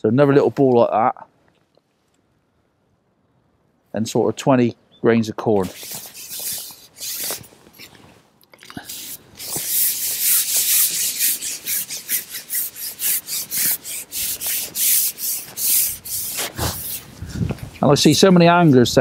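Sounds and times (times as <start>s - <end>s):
fishing pole rasping through hands: 5.6s - 17.9s.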